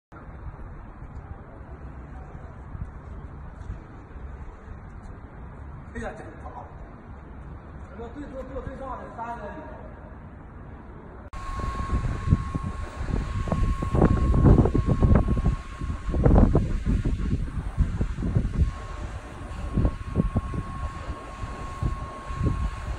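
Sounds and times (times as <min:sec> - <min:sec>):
thin steady whine: 0:09.1 - 0:22.9
wind buffeting microphone: 0:11.4 - 0:22.9.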